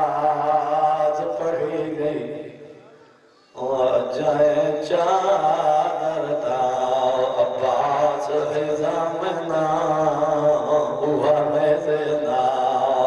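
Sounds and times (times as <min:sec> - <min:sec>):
man chanting through microphone: 0:00.0 - 0:13.0.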